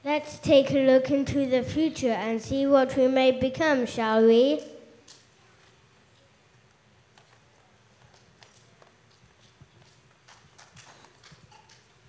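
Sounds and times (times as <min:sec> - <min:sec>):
children's footsteps on stage: 0:07.1 - 0:12.0.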